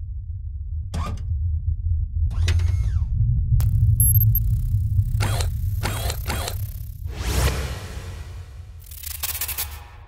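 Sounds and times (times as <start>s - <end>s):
deep rumble: 0.0s - 8.9s
mechanical whooshes: 5.1s - 9.8s.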